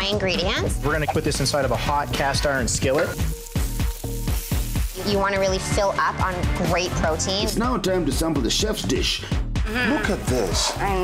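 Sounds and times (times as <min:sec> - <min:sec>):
food sizzling in a skillet: 0:00.0 - 0:07.8
background music with a beat: 0:00.0 - 0:11.0.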